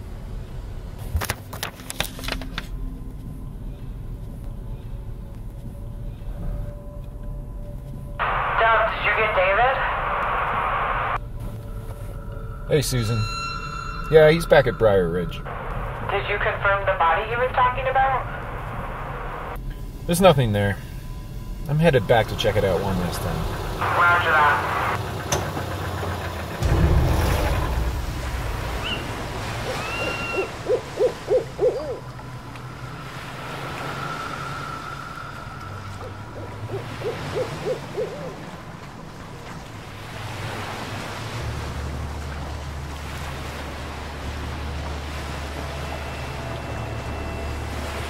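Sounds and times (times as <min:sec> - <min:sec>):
low rumble: 0:02.2 - 0:40.6
steady low hum: 0:02.8 - 0:40.2
owl hooting: 0:28.8 - 0:32.1, 0:34.6 - 0:38.6.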